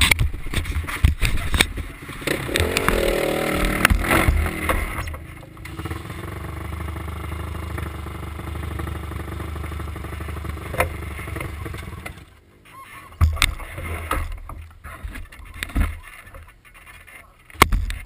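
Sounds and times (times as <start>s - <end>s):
knocks and thumps: 0.0s - 5.6s, 17.5s - 18.0s
off-road vehicle engine running: 0.0s - 18.0s.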